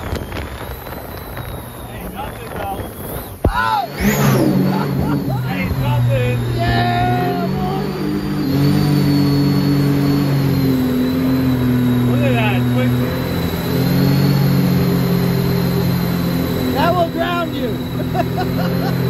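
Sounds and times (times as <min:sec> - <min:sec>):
jet boat engine running: 0:00.0 - 0:19.0
thin high whine: 0:00.0 - 0:19.0
people shouting or laughing: 0:03.4 - 0:08.0, 0:16.9 - 0:19.0.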